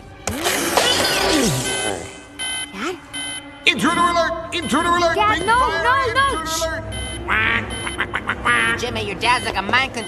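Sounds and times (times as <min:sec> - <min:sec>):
music: 0:00.0 - 0:10.0
electronic alarm blaring: 0:01.4 - 0:08.1, 0:09.2 - 0:10.0.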